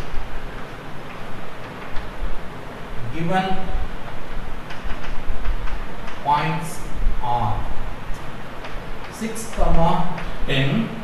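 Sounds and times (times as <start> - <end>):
steady low rumble: 0.0 - 9.1.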